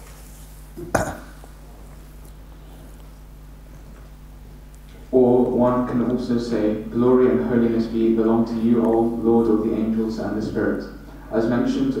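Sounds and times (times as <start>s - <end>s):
low room hum: 0.0s - 12.0s
man's muffled throat sound: 0.8s - 1.6s.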